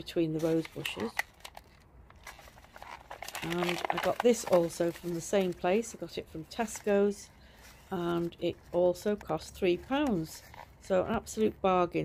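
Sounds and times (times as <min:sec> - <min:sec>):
plastic tray rustling: 0:00.3 - 0:11.4.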